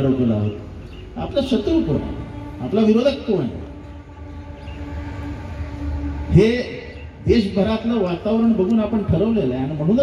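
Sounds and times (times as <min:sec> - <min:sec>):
steady low hum: 0:00.0 - 0:09.1.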